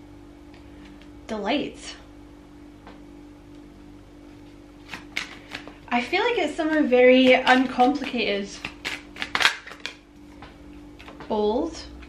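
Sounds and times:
deck of cards shuffling: 4.4 - 5.9, 6.5 - 10.0.

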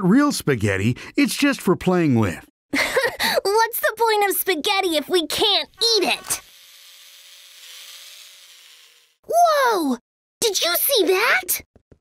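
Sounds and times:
toy truck motor whirring: 5.3 - 9.2.

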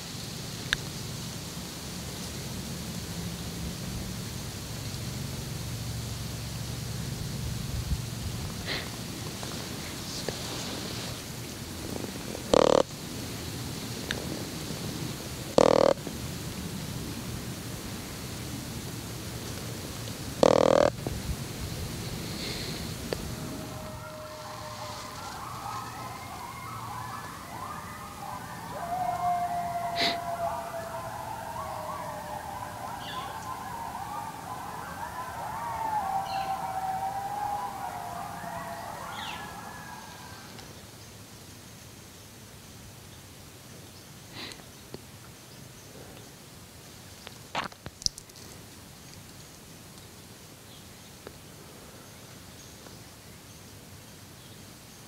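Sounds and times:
wavering gliding calls: 12.5 - 12.9, 15.5 - 16.1, 20.4 - 21.0, 22.0 - 40.6.

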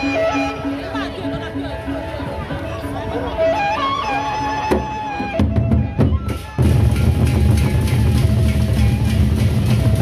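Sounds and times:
held melody notes: 0.0 - 10.0
barrel drums beaten: 4.7 - 10.0.

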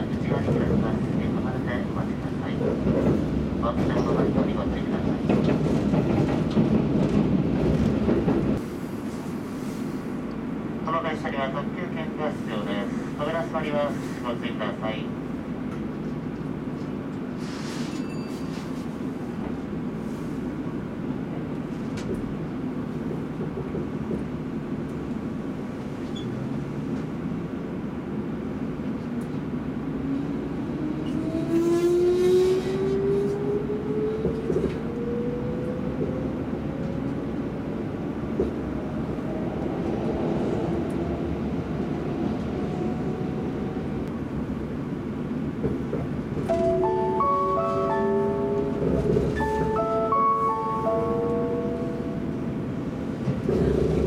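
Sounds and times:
train running gear rumble: 0.0 - 10.9, 12.5 - 54.0.

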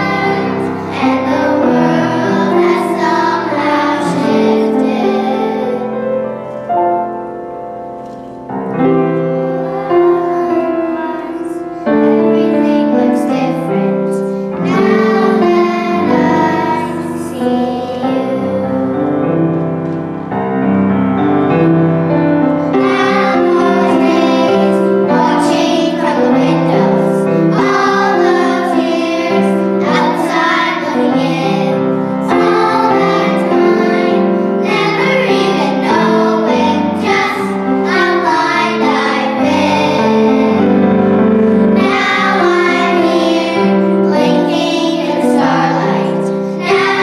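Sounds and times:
girls singing together: 0.0 - 6.2, 9.1 - 19.0, 22.7 - 41.0, 41.6 - 47.0
instrumental accompaniment: 0.0 - 47.0.

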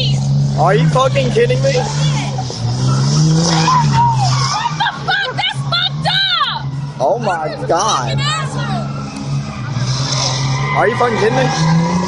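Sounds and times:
diesel truck engine revving: 0.0 - 12.0
tyres spinning on pavement: 0.6 - 12.0.

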